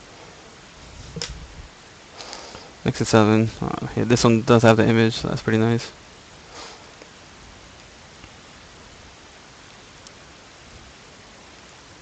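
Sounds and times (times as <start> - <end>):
microphone background hiss: 0.0 - 12.0.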